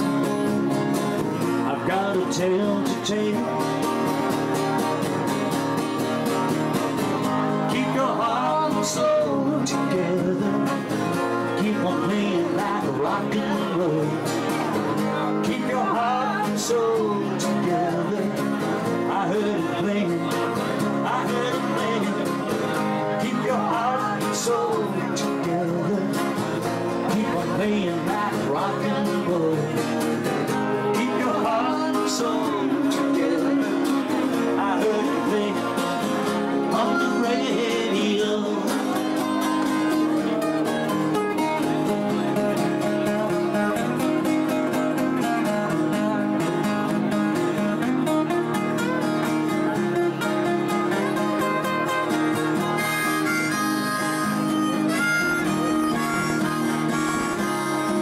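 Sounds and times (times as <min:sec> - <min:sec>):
strummed acoustic guitars: 0:00.0 - 0:58.0
harmonica solo: 0:50.6 - 0:58.0.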